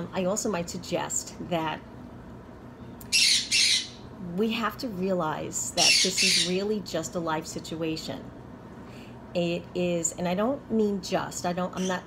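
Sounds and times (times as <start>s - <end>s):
parrot squawking: 3.0s - 4.1s, 5.8s - 6.6s.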